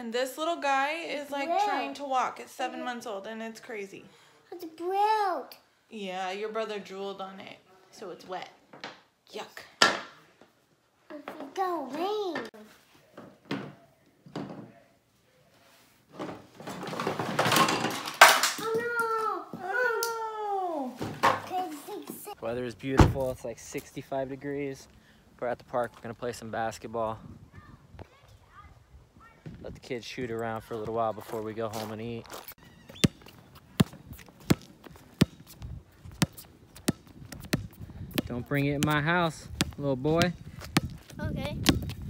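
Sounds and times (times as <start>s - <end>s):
rubber ball bouncing on concrete: 32.9s - 42.0s.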